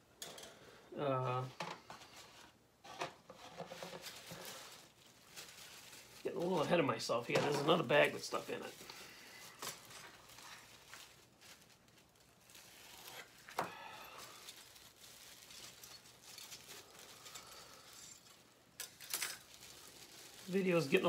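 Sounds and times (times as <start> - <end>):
plastic bag rustling: 1.4 - 21.0.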